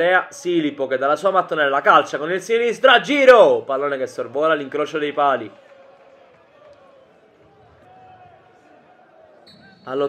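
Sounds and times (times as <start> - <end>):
distant voices and shouts: 4.4 - 10.0.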